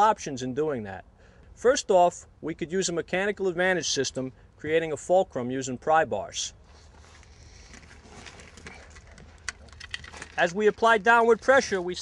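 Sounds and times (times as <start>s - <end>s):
handling noise: 6.8s - 12.0s.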